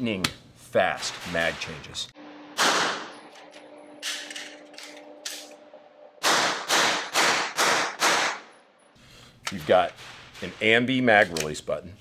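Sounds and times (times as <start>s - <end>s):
suppressed gunshots echoing: 2.6s - 3.2s, 6.2s - 8.5s
gun handling clacks: 11.2s - 11.6s.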